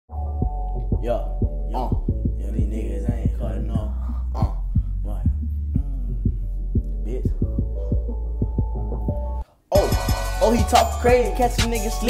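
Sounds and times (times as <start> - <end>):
hip-hop beat with heavy bass: 0.1 - 12.0
person rapping: 0.9 - 8.8, 9.7 - 12.0.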